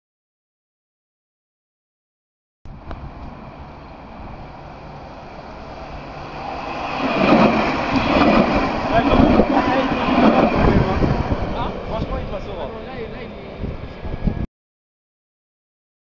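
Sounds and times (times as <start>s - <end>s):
electric tram passing: 2.7s - 14.5s.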